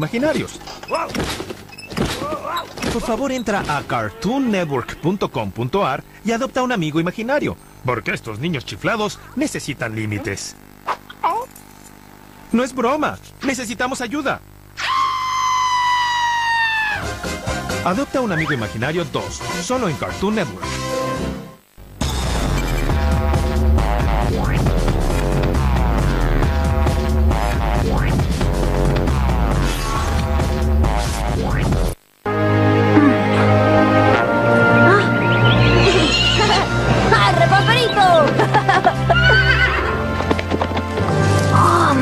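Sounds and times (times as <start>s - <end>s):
cartoon character screaming: 14.8s - 17.2s, 34.9s - 36.6s
background music: 16.9s - 42.0s.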